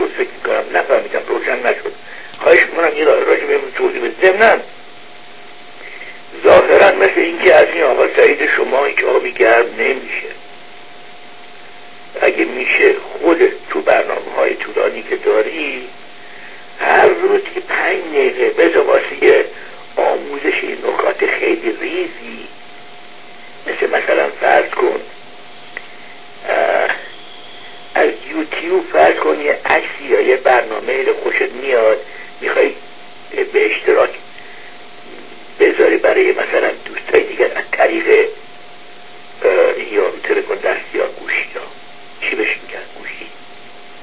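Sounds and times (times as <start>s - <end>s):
person speaking over telephone: 0.0s - 4.7s, 6.4s - 10.4s, 12.2s - 15.9s, 16.8s - 22.5s, 23.6s - 25.2s, 26.4s - 27.2s, 27.9s - 34.2s, 35.1s - 38.4s, 39.4s - 43.4s
person talking: 0.0s - 4.7s, 6.3s - 10.4s, 12.2s - 15.9s, 16.8s - 22.5s, 23.6s - 25.1s, 26.4s - 27.1s, 27.9s - 34.2s, 35.0s - 38.4s, 39.4s - 43.4s
faint steady tone: 0.0s - 44.0s.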